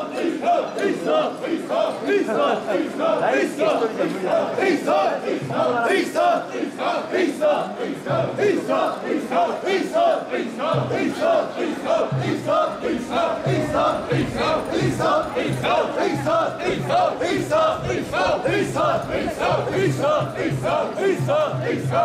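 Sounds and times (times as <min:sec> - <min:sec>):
crowd chanting in unison: 0:00.0 - 0:22.0.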